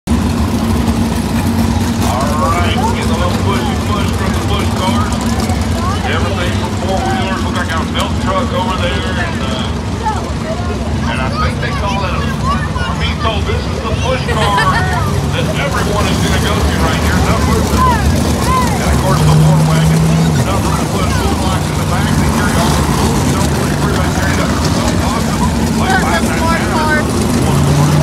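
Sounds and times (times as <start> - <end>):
racing car engines droning: 0.1 - 28.0
people talking: 2.0 - 28.0.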